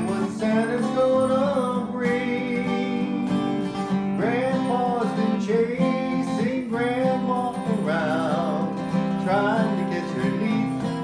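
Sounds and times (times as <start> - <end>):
acoustic guitar country tune: 0.0 - 11.0.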